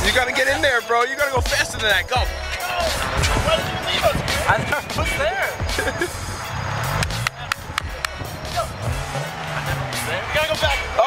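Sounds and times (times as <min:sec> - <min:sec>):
car engine starting and revving: 0:02.9 - 0:11.0.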